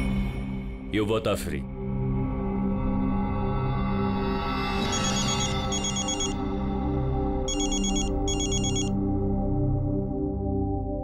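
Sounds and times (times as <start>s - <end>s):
background music: 0.0s - 11.0s
phone electronic trilling ringtone: 4.8s - 6.4s, 7.5s - 9.0s.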